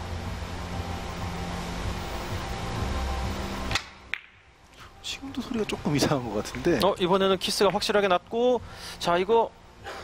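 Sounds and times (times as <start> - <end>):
cue striking billiard ball: 3.7 - 4.4.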